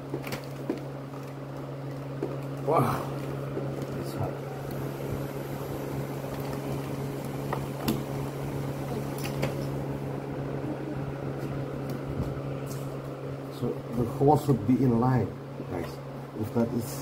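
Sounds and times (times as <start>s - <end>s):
low electric hum: 0.0s - 17.0s.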